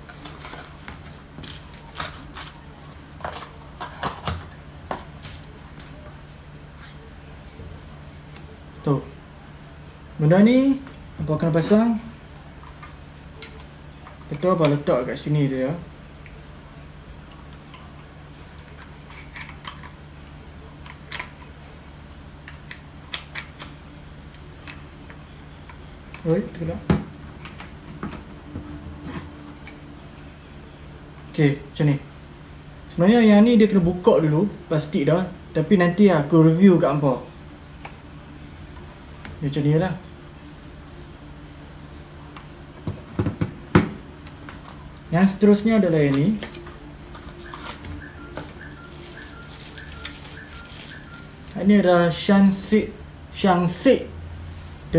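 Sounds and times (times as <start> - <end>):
steady low hum: 0.0 - 54.9.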